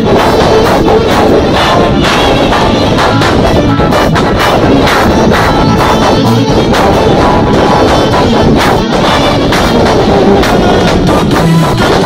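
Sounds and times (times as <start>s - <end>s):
drum kit beat: 0.0s - 12.0s.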